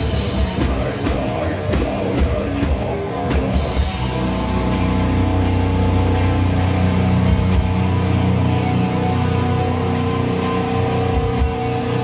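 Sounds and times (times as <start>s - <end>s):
distorted electric guitars and bass: 0.0s - 12.0s.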